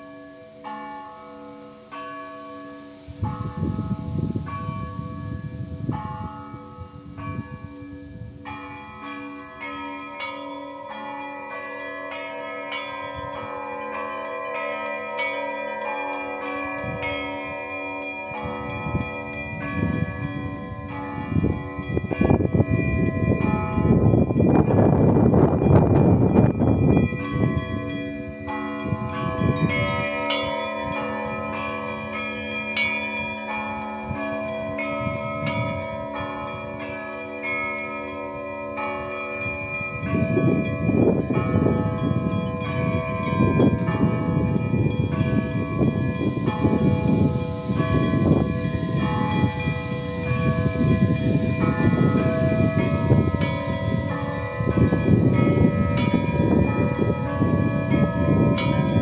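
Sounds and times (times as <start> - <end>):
church bells ringing a peal: 0.0 - 59.0.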